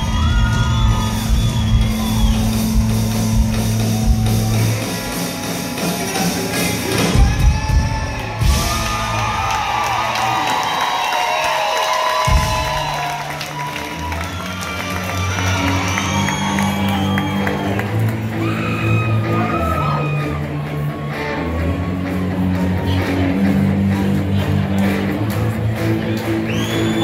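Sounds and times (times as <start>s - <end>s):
live country band playing: 0.0s - 9.7s, 12.2s - 27.0s
crowd cheering and whooping: 0.0s - 24.9s, 25.8s - 27.0s.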